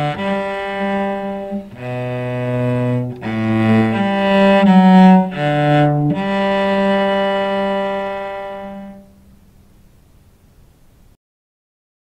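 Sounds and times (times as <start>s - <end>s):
cello bowing long note: 0.0s - 9.5s.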